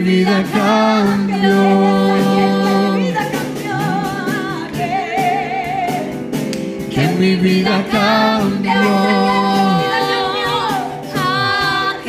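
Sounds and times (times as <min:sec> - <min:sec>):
cajon beat: 0:00.0 - 0:12.0
keyboard: 0:00.0 - 0:12.0
voices singing long notes: 0:07.0 - 0:12.0.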